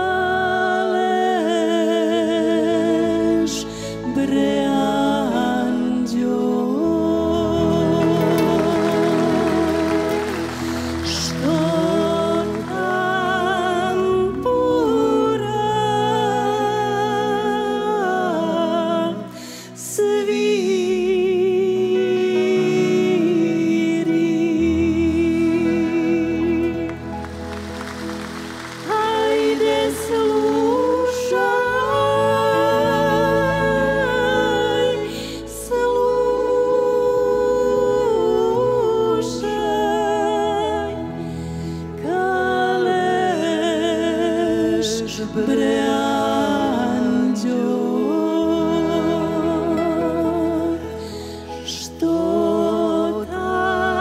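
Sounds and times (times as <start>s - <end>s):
women singing with vibrato: 0.0s - 54.0s
live band playing folk song: 7.6s - 14.5s, 25.6s - 35.2s.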